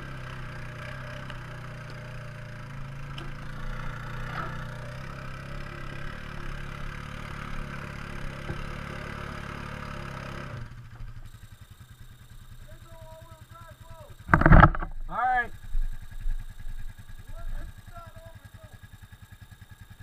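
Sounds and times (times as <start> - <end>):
quad bike engine running: 0.0 - 20.0.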